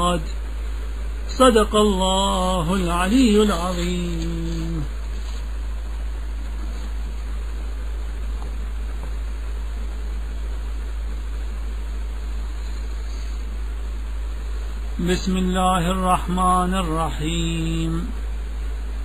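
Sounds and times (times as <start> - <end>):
constant low hum: 0.0 - 19.0
steady hiss: 0.0 - 19.0.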